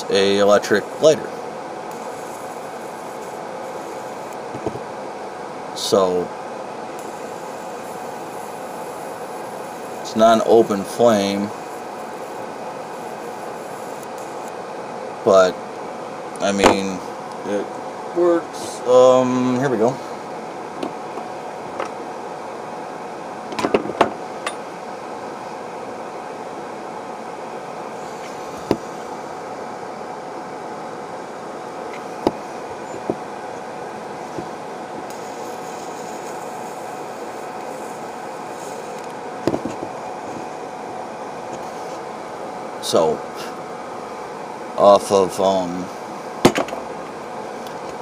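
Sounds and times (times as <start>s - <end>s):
steady background hum: 0.0s - 48.0s.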